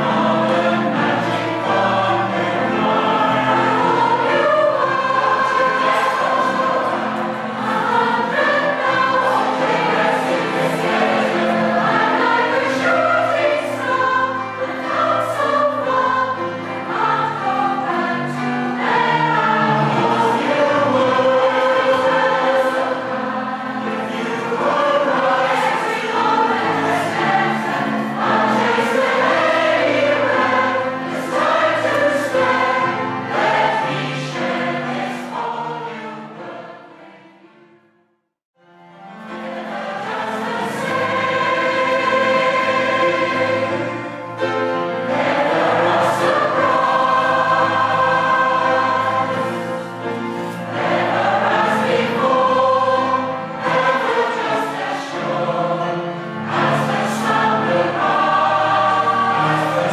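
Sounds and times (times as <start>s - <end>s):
large mixed choir singing: 0.0s - 37.9s, 38.8s - 59.9s.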